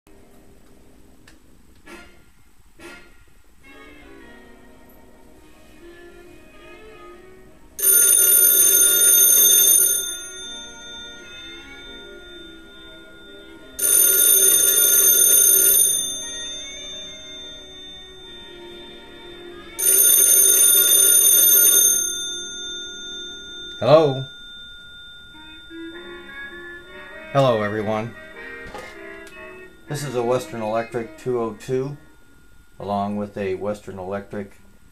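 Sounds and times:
telephone ringer bells: 0:07.8 - 0:33.2.

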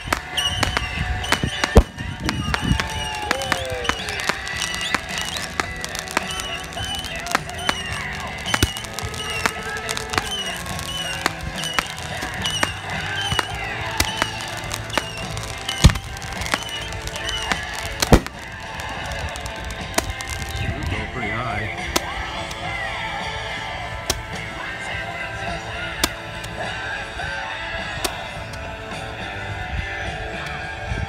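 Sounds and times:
loud firework bangs: 0:00.0 - 0:20.8
fireworks crackling and popping: 0:00.0 - 0:24.9.

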